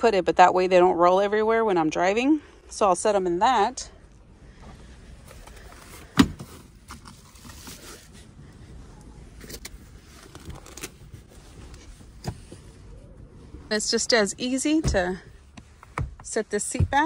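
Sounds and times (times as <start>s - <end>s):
faint rustling: 4.0s - 17.0s.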